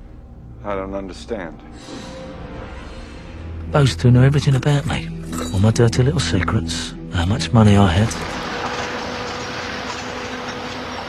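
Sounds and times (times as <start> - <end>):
moving vehicle road noise: 8.2 - 11.0.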